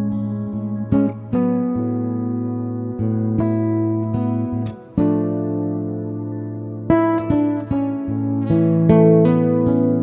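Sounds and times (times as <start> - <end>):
plucked guitar notes: 0.0 - 10.0.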